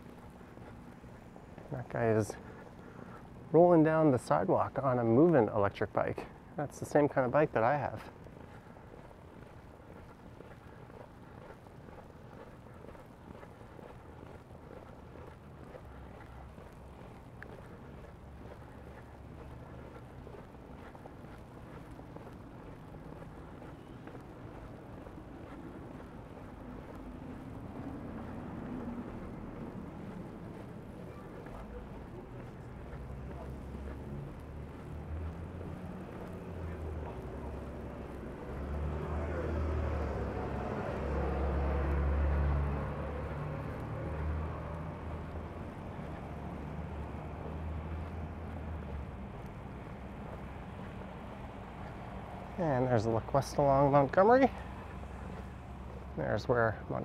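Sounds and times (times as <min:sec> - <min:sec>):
traffic rumble: 0:00.0 - 0:57.0.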